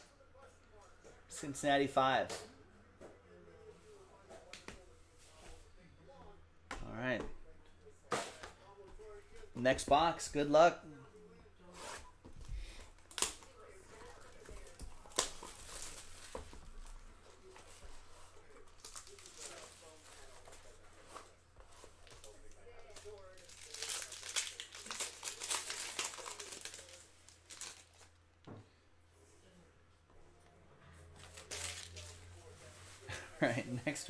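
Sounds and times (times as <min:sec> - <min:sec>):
plastic wrapping crinkling and tearing: 0:13.0 - 0:21.2, 0:21.8 - 0:28.1, 0:31.2 - 0:32.2.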